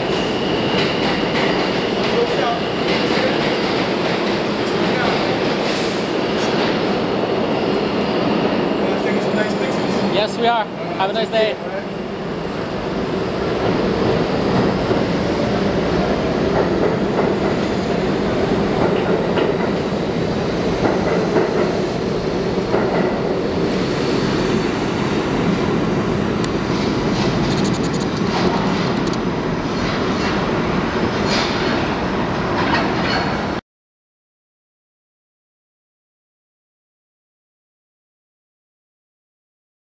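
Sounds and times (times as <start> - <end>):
subway train rumbling past: 0.0 - 33.6.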